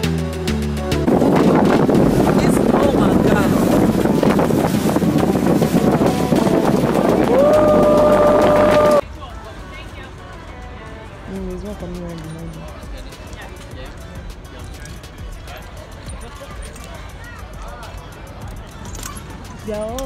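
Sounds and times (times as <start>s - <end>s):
boat engine: 0.0s - 9.0s
wind rushing: 0.8s - 9.0s
faint voices: 6.0s - 20.0s.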